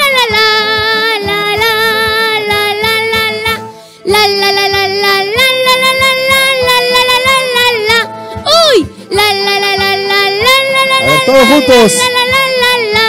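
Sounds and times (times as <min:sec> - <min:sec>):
boy singing into a microphone: 0:00.0 - 0:13.0.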